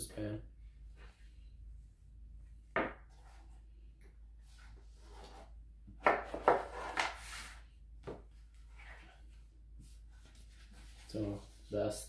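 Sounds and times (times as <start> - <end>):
cardboard scraping and rubbing: 6.3 - 7.6.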